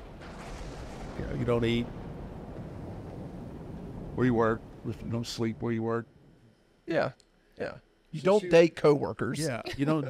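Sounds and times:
steady low rumble: 0.0s - 9.1s.

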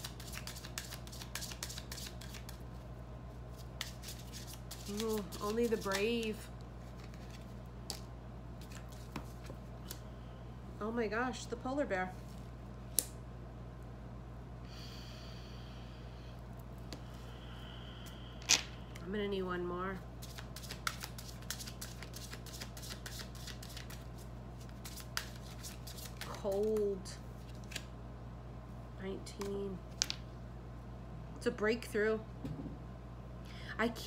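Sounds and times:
cards being shuffled: 0.0s - 2.8s, 3.5s - 10.0s, 20.2s - 27.9s
low electrical hum: 0.0s - 34.0s.

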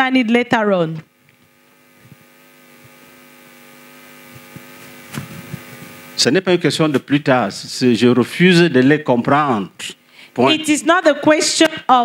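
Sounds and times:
sound system hum: 0.0s - 12.0s.

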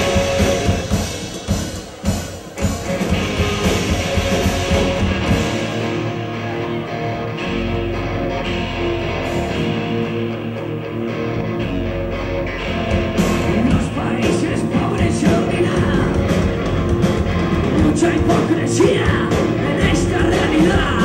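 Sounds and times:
punk rock band playing: 0.0s - 21.0s.

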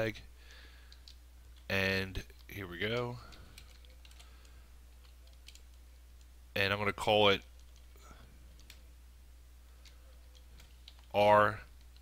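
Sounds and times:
person speaking: 0.0s - 0.3s, 1.5s - 5.6s, 6.5s - 8.8s, 9.9s - 12.0s
low steady hum: 0.0s - 12.0s
computer keyboard keystrokes: 2.3s - 5.8s, 9.8s - 11.2s.

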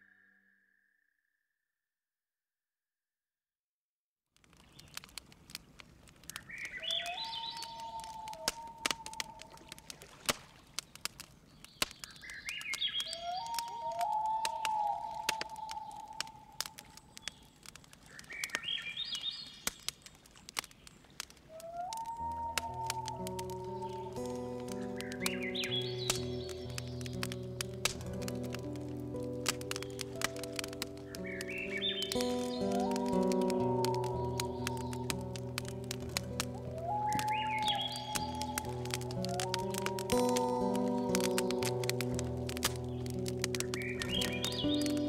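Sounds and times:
sharp crackling clicks: 4.4s - 45.0s
bird call with held whistle: 6.5s - 9.6s, 12.1s - 17.5s, 21.6s - 27.0s, 36.5s - 41.6s.

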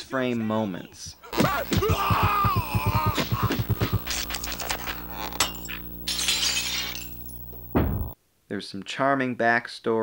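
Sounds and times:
glass shattering: 4.3s - 8.2s
heavy thud: 7.6s - 8.2s.

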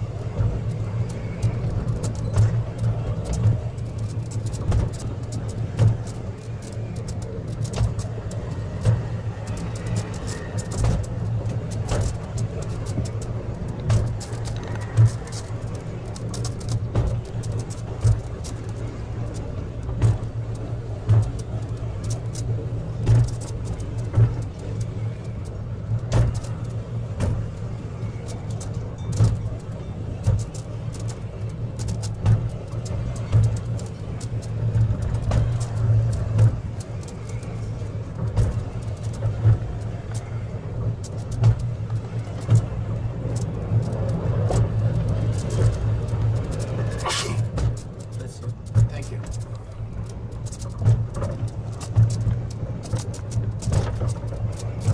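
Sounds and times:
funicular rumbling on track: 0.0s - 54.9s.

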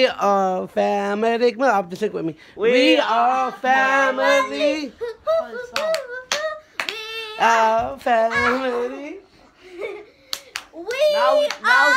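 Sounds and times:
voices chanting: 2.6s - 6.6s
hand claps: 5.7s - 7.0s, 10.3s - 11.7s.

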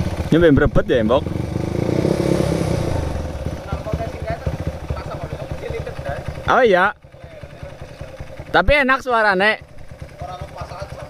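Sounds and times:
motorcycle engine idling unevenly: 0.0s - 11.0s.

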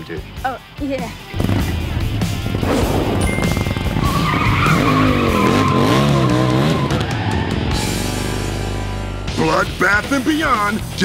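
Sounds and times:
motorcycle engine revving: 1.1s - 9.1s
tyres squealing: 3.4s - 7.8s.

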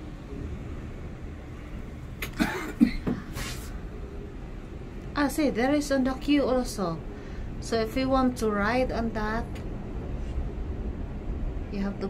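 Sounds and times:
low background rumble: 0.0s - 12.0s
woman coughing: 2.2s - 3.2s.

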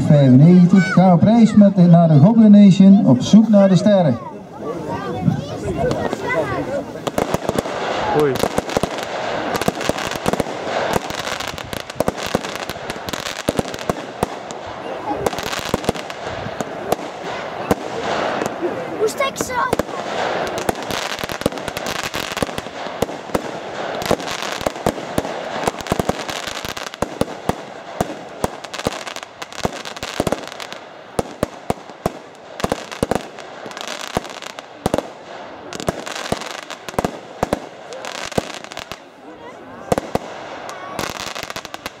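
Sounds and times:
firework aerial bursts: 0.0s - 42.0s
firework crackle: 0.0s - 42.0s.

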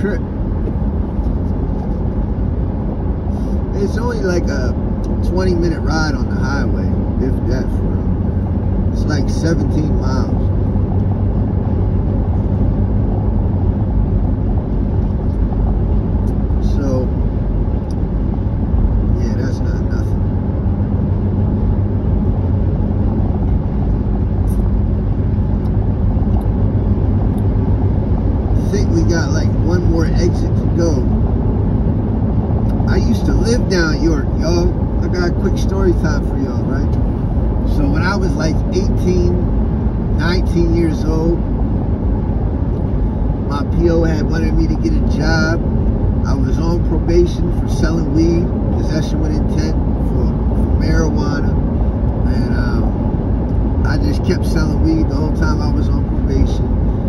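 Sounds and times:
car road and engine noise: 0.0s - 57.0s
person talking: 19.2s - 20.1s, 28.6s - 31.1s, 32.7s - 37.0s, 37.7s - 39.4s.

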